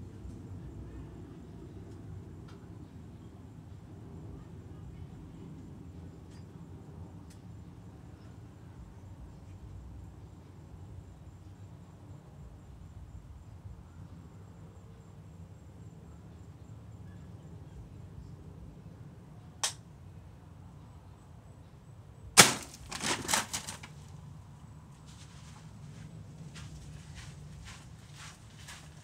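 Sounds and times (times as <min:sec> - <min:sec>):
air rifle shot crack: 0:22.4 - 0:22.9
plastic bottles clattering: 0:22.4 - 0:24.0.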